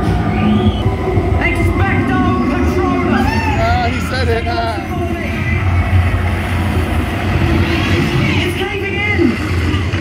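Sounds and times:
indistinct voices: 0.0s - 10.0s
loud low rumble: 0.0s - 10.0s.

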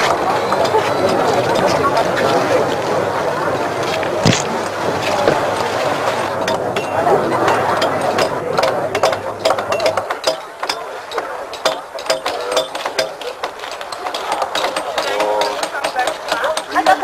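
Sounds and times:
crowd talking: 0.0s - 17.0s
hammers striking chisels on concrete: 7.8s - 17.0s.

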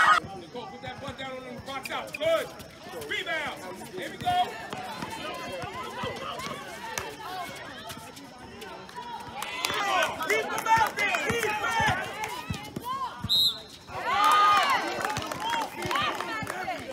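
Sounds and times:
voices shouting: 0.0s - 0.2s, 1.1s - 16.9s.

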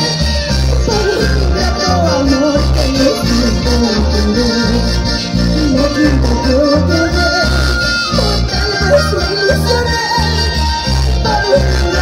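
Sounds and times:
bouncing electric bass line: 0.0s - 12.0s
electric guitars: 0.0s - 12.0s.

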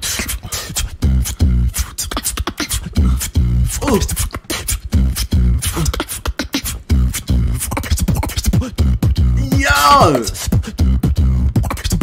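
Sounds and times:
beatboxing into a microphone: 0.0s - 12.0s.

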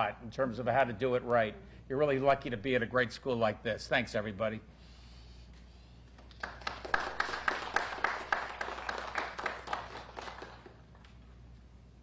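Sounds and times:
small audience applauding: 6.1s - 11.2s.

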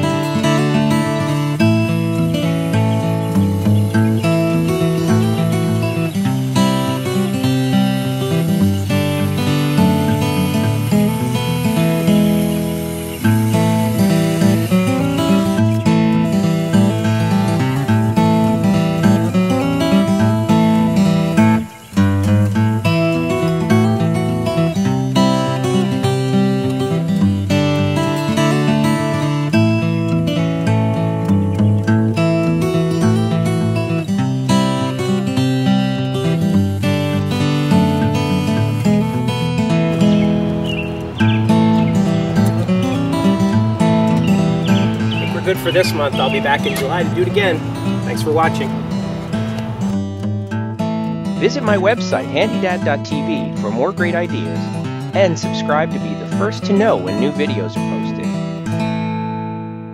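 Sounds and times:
strummed acoustic guitar music: 0.0s - 59.9s.

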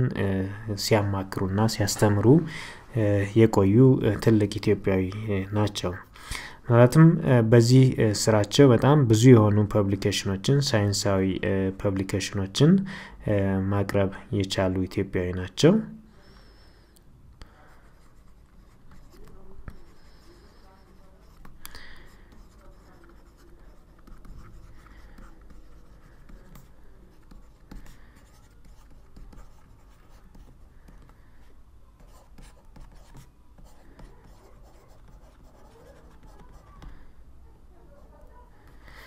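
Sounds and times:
stylus scratching on tablet: 17.6s - 36.9s.

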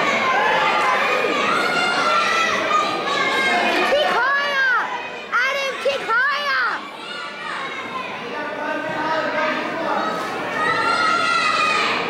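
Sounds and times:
murmur of voices in a hall: 0.0s - 12.0s.

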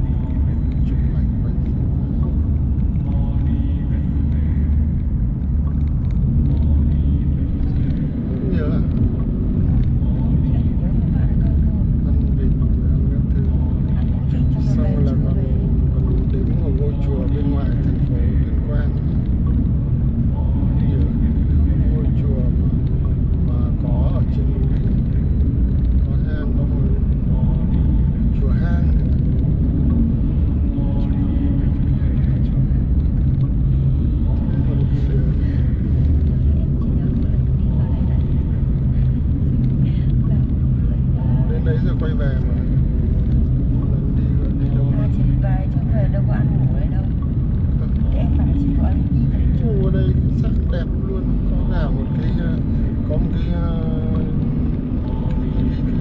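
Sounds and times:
car cabin road and engine rumble: 0.0s - 56.0s
faint voices talking: 0.0s - 56.0s.

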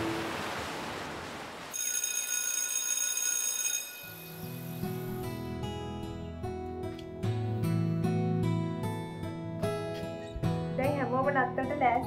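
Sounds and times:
electric bell ringing: 1.7s - 5.5s.

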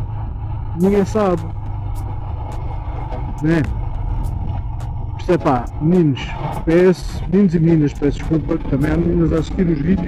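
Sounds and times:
motorcycle engine droning: 0.0s - 10.0s.

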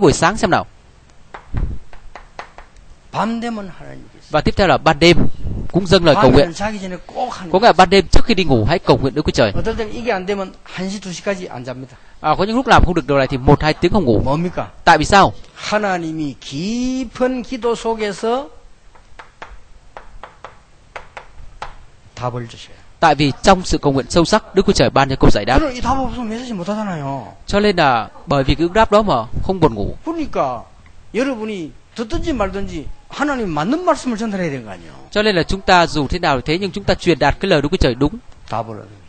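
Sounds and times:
chalk tapping on chalkboard: 1.3s - 2.8s, 18.9s - 21.8s.

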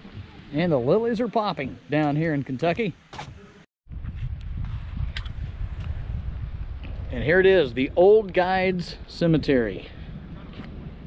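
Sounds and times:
wind rumbling on microphone: 3.2s - 11.0s.

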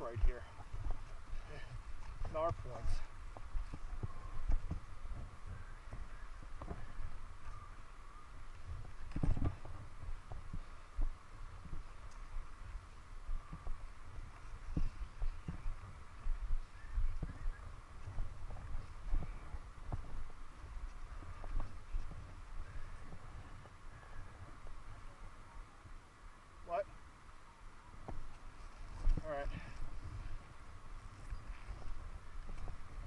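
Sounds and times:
wind rumble on microphone: 0.0s - 33.0s.

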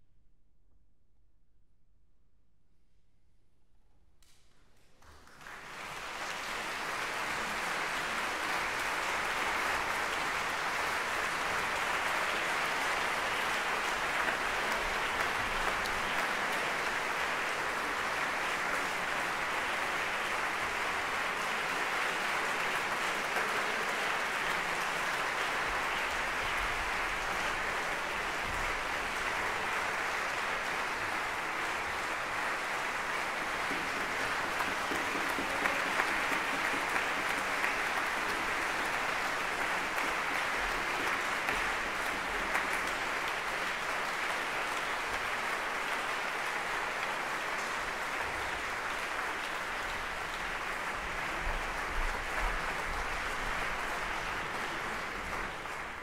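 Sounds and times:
audience applauding: 4.8s - 56.0s.

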